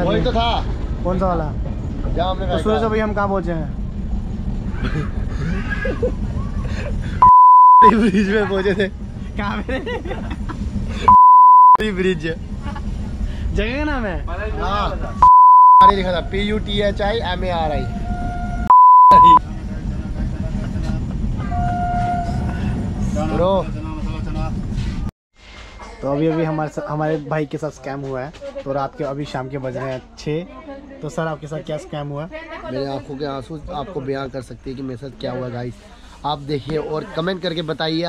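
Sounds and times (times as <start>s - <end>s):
train coach rumble: 0.0s - 7.2s, 7.9s - 11.1s, 11.8s - 15.2s, 15.8s - 25.1s
censor bleep: 7.2s - 7.9s, 11.1s - 11.8s, 15.2s - 16.0s, 18.7s - 19.4s.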